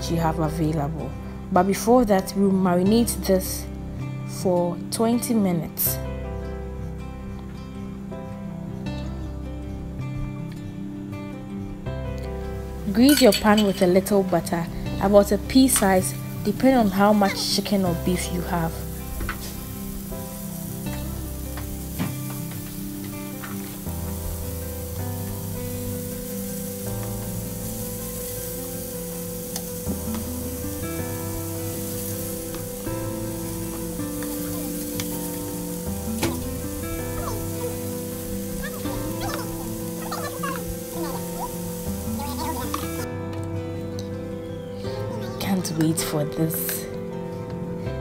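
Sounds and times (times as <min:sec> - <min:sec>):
background music with slow bass: 0:00.0 - 0:48.0
meat sizzling on a grill pan: 0:12.6 - 0:43.1.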